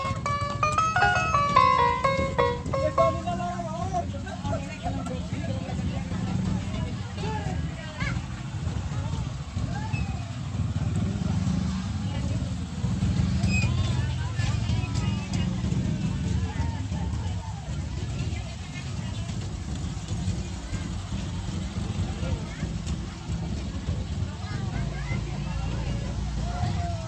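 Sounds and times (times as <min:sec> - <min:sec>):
engine rumble: 0:00.0 - 0:27.0
people chattering: 0:00.0 - 0:27.0.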